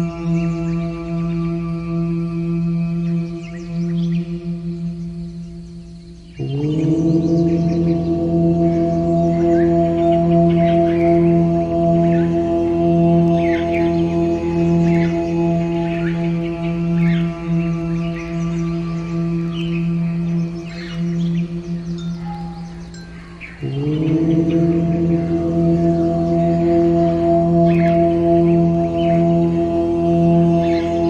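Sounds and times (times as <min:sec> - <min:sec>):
birds chirping: 0:00.0 - 0:31.0
singing bowl drone: 0:00.0 - 0:31.0.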